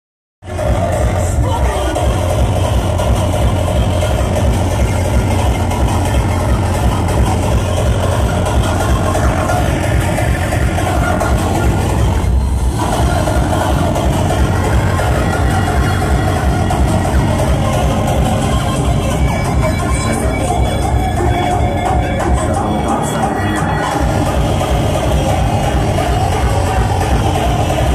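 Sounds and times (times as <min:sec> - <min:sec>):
loud hardcore techno: 0:00.4 - 0:27.9.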